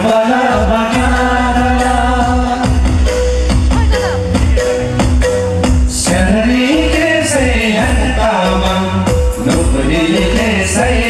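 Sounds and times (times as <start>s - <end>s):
men singing into microphones: 0.0s - 3.5s, 4.4s - 11.0s
amplified instrumental accompaniment: 0.0s - 11.0s.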